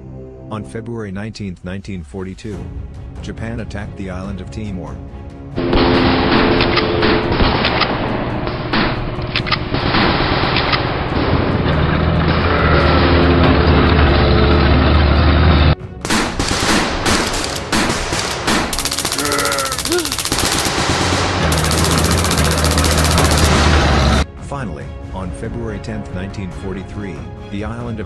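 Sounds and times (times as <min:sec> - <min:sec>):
background music: 0:00.0 - 0:28.0
gunfire: 0:05.6 - 0:09.0, 0:16.0 - 0:24.2
rapid machine-gun fire: 0:16.0 - 0:24.2.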